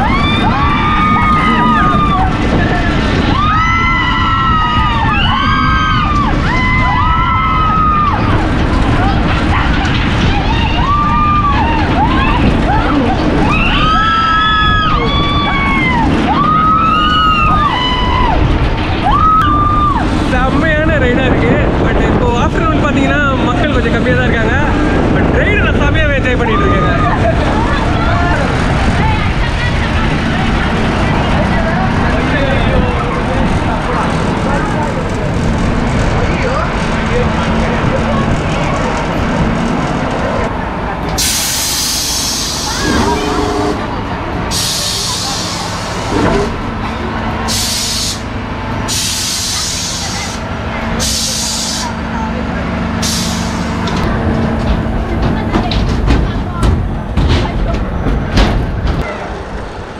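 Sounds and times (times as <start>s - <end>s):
riders screaming: 0.0s - 20.2s
ride machinery rumbling: 0.0s - 59.9s
sudden loud hiss: 41.2s - 43.9s.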